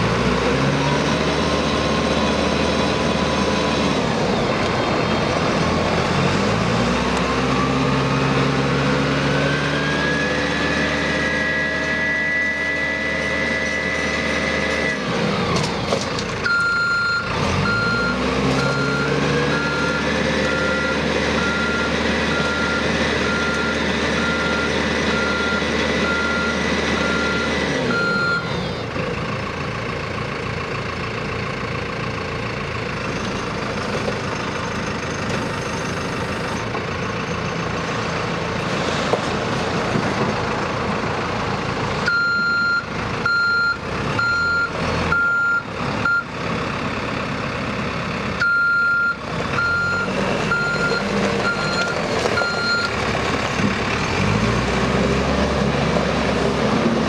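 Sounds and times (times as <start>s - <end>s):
diesel engine running: 0.0s - 57.0s
reversing alarm beeping: 16.4s - 28.5s, 42.1s - 46.3s, 48.4s - 52.9s.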